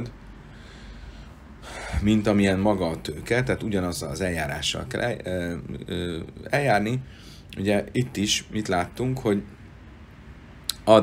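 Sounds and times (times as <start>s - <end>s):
faint low hum: 0.0s - 11.0s
man drawing breath: 0.4s - 2.0s, 7.1s - 7.5s.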